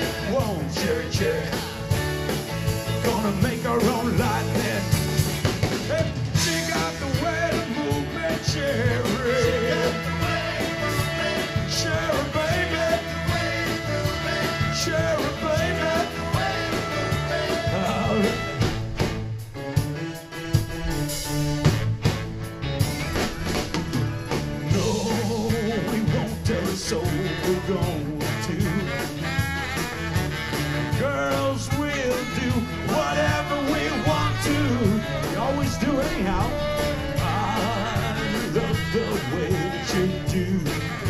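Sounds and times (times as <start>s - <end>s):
live rock band playing: 0.0s - 41.0s.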